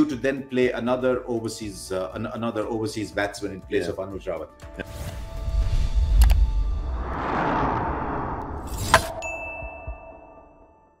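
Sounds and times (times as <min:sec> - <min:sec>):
rushing whoosh: 0:05.2 - 0:09.3
high ringing tone: 0:09.1 - 0:11.0.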